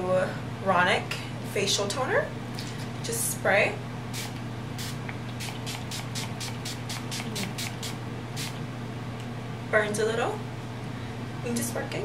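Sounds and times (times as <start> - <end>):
steady low hum: 0.0 - 12.0
spray bottle hissing puffs: 4.2 - 8.6.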